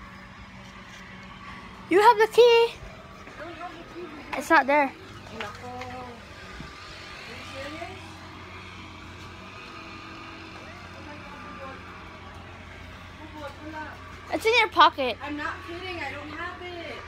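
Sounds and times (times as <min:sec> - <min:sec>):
road noise: 0:00.0 - 0:17.0
vehicle engine hum: 0:00.0 - 0:17.0
faint voices: 0:09.3 - 0:17.0.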